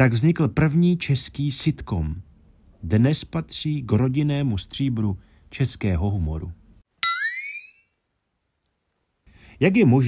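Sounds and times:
ringing chime: 7.0s - 8.2s.

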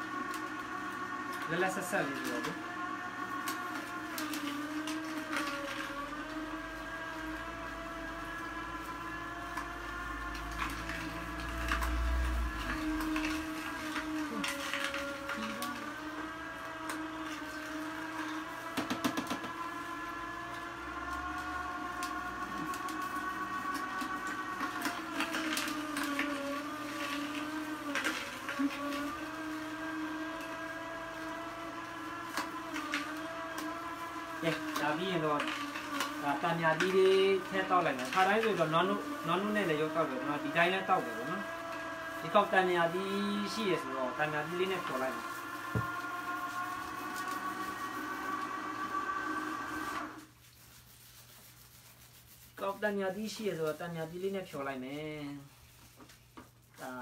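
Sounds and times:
juicer motor hum: 0.0s - 57.0s.

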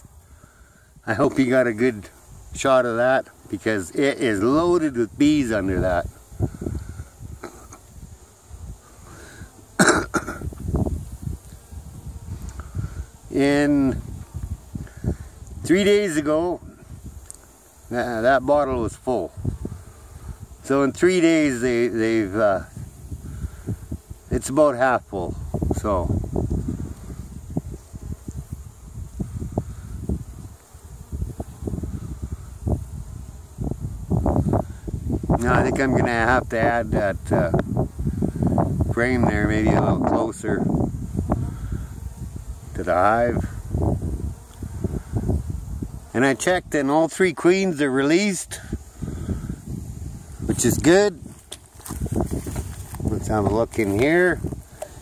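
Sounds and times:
honey bees buzzing: 0.0s - 55.0s
man coughing: 9.8s - 10.5s.

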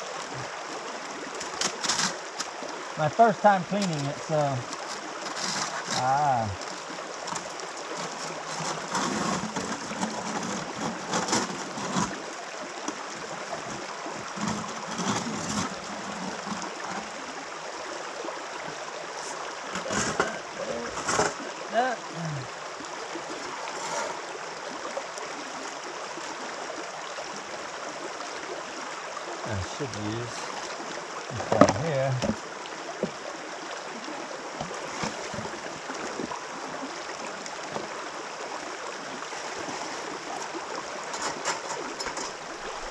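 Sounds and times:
stream rushing over stones: 0.0s - 42.9s
splashes and knocks in bucket: 1.4s - 2.6s, 3.6s - 12.2s, 12.8s - 17.1s, 19.7s - 21.5s, 31.4s - 33.2s, 34.5s - 36.4s, 39.2s - 42.9s.

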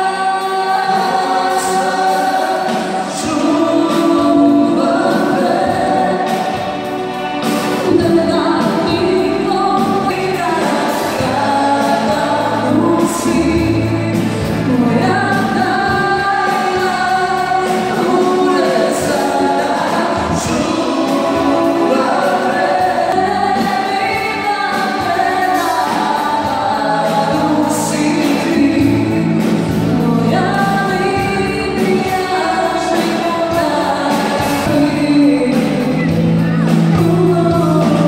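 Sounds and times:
live pop band playing: 0.0s - 38.0s
person singing: 0.0s - 38.0s.

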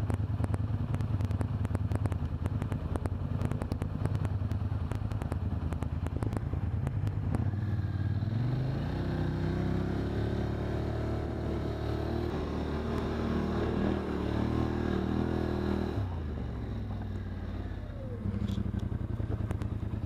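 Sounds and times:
quad engine running: 0.0s - 20.0s.

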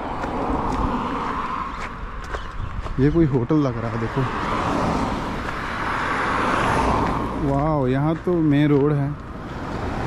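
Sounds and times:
vehicle passing on road: 0.0s - 10.0s.

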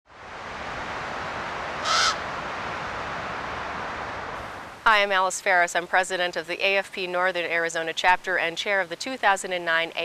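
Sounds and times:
background hiss: 0.2s - 10.0s
harsh bird call: 1.8s - 2.3s.

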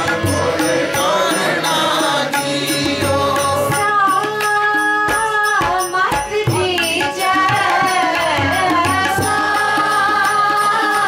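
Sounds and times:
tabla strokes: 0.0s - 11.0s
woman singing a devotional hymn: 3.7s - 11.0s.

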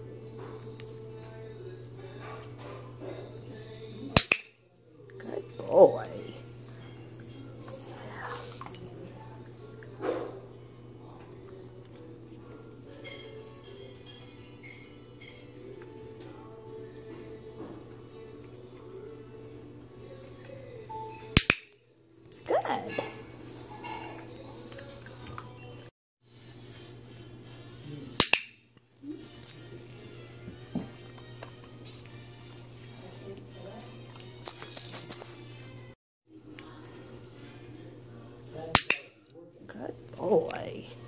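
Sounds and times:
background music: 5.2s - 8.4s.

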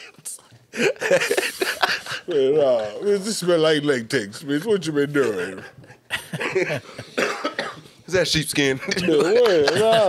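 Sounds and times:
man laughing: 0.8s - 2.9s, 5.3s - 7.0s, 8.8s - 10.0s
man coughing: 6.3s - 8.0s.

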